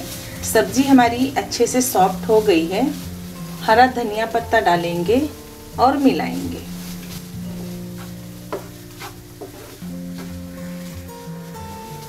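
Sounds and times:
soft background music: 0.0s - 12.0s
spatula scraping vegetables in pan: 0.0s - 12.0s.

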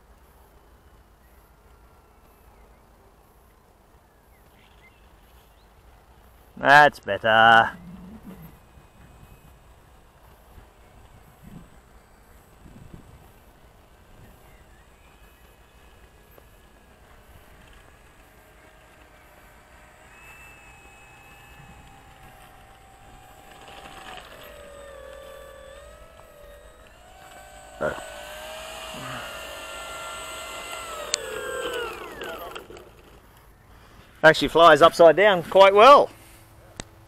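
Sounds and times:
model plane motor whine: 7.3s - 33.7s.

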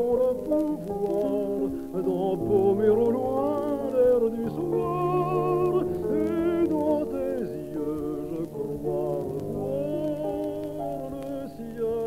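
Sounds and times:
man singing: 0.0s - 12.0s
piano chords: 0.0s - 12.0s.

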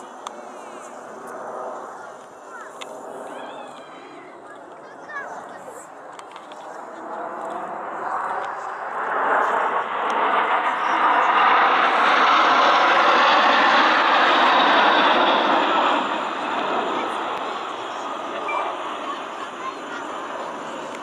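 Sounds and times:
jets passing over: 0.0s - 21.0s.

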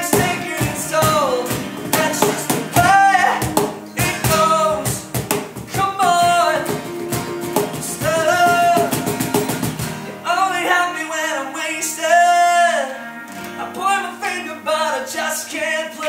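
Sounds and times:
man singing: 0.0s - 9.4s, 10.1s - 16.0s
cajon beat: 0.0s - 10.2s
strummed acoustic guitars: 0.0s - 16.0s.

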